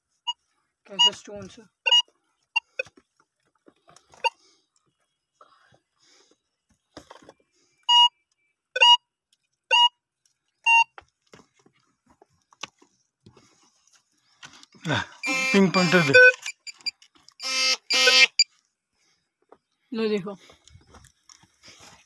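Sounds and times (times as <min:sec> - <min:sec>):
metal detector beeps: 0:00.3 - 0:01.2, 0:01.8 - 0:02.9, 0:07.8 - 0:08.2, 0:08.8 - 0:09.0, 0:09.7 - 0:10.0, 0:10.7 - 0:11.0, 0:15.2 - 0:18.5
metal detector chirps: 0:01.8 - 0:02.9, 0:07.8 - 0:08.2, 0:08.8 - 0:09.0, 0:09.7 - 0:10.0, 0:10.7 - 0:11.0, 0:15.2 - 0:18.5.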